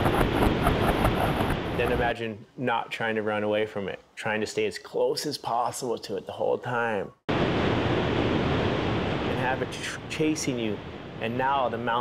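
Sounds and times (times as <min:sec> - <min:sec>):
wave breaking rushing water: 0:07.3 - 0:12.0.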